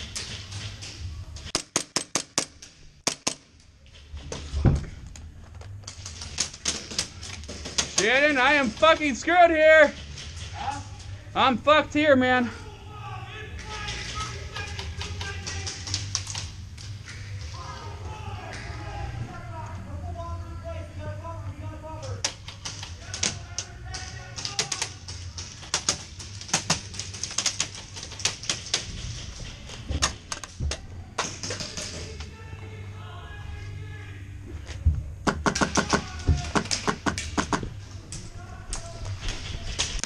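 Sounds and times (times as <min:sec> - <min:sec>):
steady low hum: 0:00.0 - 0:40.0
paintball markers firing: 0:01.4 - 0:03.5, 0:35.2 - 0:37.7
paintballs smacking walls: 0:05.8 - 0:10.8, 0:13.6 - 0:17.8, 0:22.2 - 0:32.3, 0:35.2 - 0:40.0.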